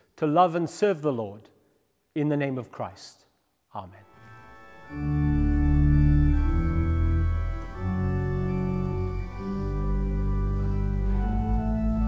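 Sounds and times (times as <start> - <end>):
organ playing slow chords: 4.0 - 12.0.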